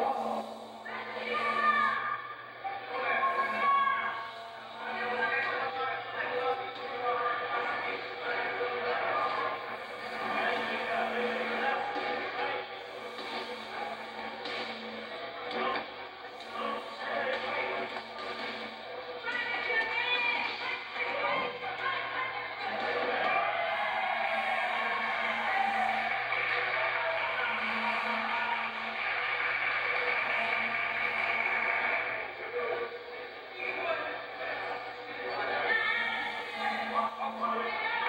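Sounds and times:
indistinct voices: 0.0s - 38.0s
music: 7.3s - 38.0s.

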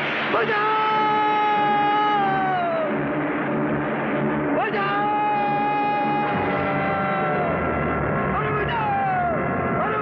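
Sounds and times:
man screaming: 0.4s - 2.9s, 4.7s - 7.7s, 8.4s - 9.4s.

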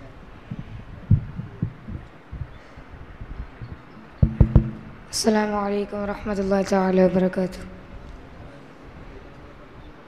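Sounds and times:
low dull thumps: 4.0s - 5.2s.

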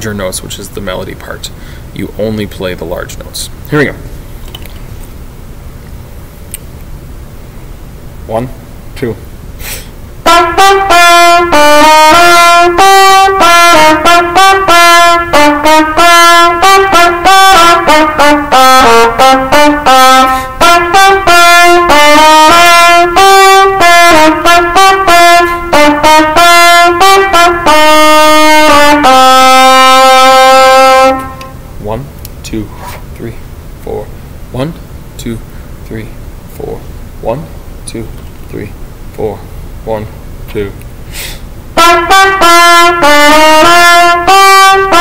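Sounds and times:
low room rumble: 0.0s - 22.2s, 22.9s - 45.0s
trumpet handling sounds: 9.8s - 31.6s, 32.2s - 33.2s, 41.8s - 45.0s.

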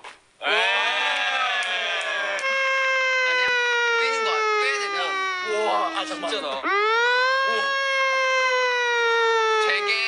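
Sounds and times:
man's long wailing note: 2.2s - 9.9s.

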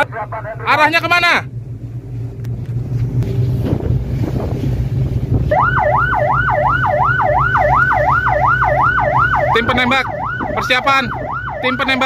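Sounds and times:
boat engine running: 0.0s - 12.0s
wind on microphone: 2.8s - 5.8s
siren yelping: 5.5s - 12.0s.

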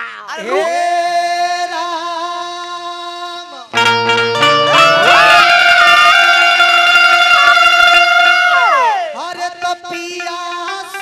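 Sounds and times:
man singing a long high note: 0.3s - 11.0s
folk instrumental accompaniment: 3.8s - 11.0s.

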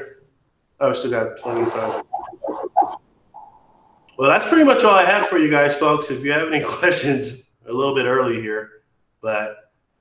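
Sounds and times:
muffled vocal sounds: 1.1s - 7.2s.

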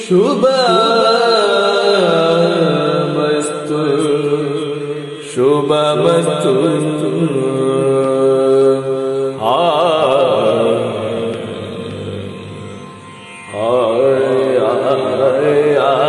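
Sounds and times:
man singing long notes: 0.0s - 16.0s.

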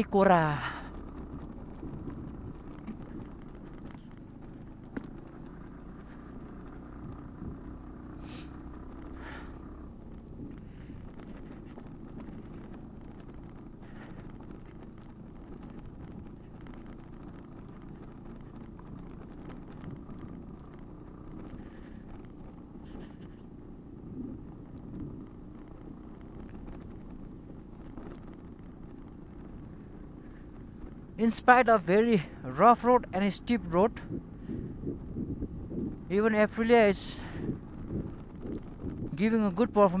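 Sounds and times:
motorcycle engine and road rumble: 0.0s - 40.0s.

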